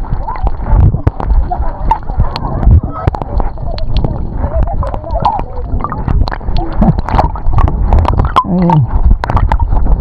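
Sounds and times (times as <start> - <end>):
water sloshing and splashing: 0.0 - 10.0.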